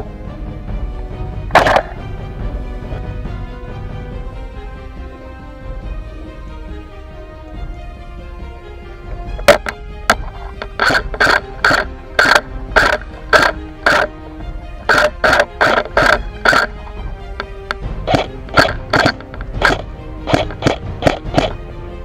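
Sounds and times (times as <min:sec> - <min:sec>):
sharp percussive hits: 0:01.5 - 0:02.2, 0:09.4 - 0:14.2, 0:14.8 - 0:16.8, 0:17.4 - 0:21.6.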